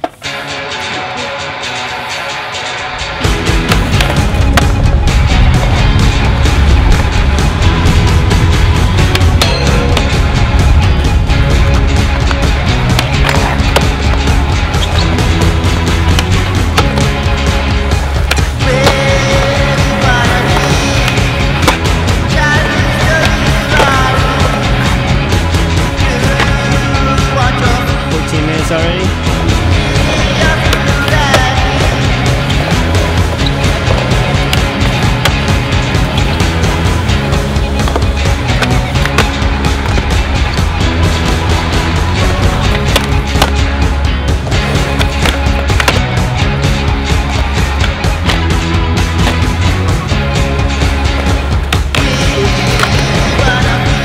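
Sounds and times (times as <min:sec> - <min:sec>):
loud background music: 0:00.0 - 0:54.0
skateboard wheels rolling on concrete: 0:00.0 - 0:54.0
skateboard clacks: 0:03.5 - 0:04.8, 0:05.4 - 0:27.9, 0:29.4 - 0:50.1, 0:50.7 - 0:54.0.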